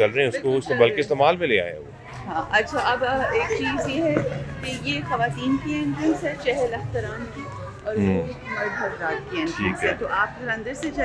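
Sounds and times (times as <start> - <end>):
people talking: 2.3 - 11.0
children's high-pitched voices: 4.2 - 10.0.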